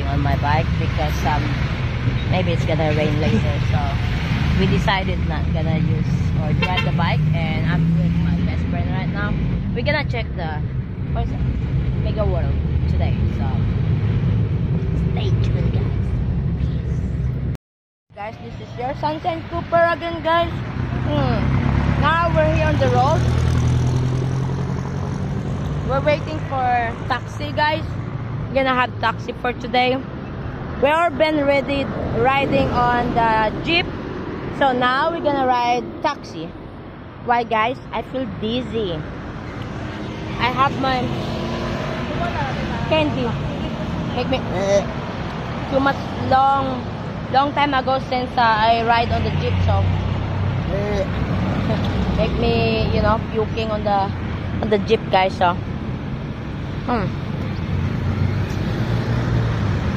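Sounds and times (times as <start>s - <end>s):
road noise: 0.0s - 59.9s
vehicle engine humming: 0.0s - 59.9s.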